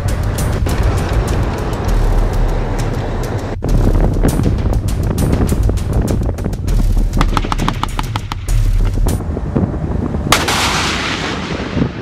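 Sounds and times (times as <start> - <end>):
vehicle engine rumble: 0.0 - 10.4
rapid sharp cracks: 7.2 - 9.0.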